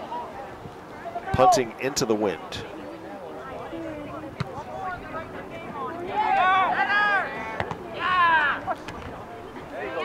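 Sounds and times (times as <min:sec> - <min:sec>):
people shouting: 0:06.0 - 0:08.7.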